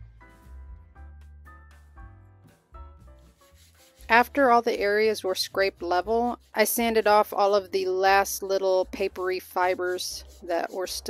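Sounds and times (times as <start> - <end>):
soft piano music: 0.0 - 3.7
hand rubbing board surface: 3.3 - 11.0.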